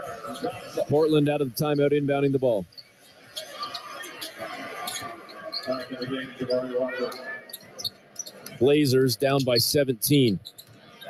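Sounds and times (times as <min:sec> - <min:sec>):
arena crowd voices: 0:00.0 - 0:11.0.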